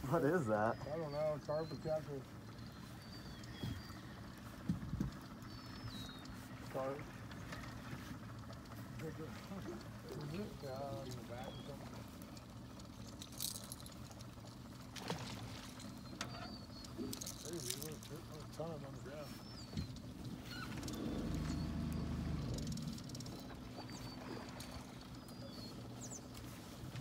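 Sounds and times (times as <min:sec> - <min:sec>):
outboard motor idling: 0:00.0 - 0:27.0
short high chirping calls: 0:15.8 - 0:17.9.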